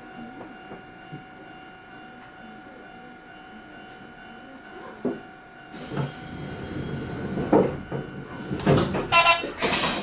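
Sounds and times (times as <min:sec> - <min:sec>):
hiss: 0:09.6 - 0:10.0.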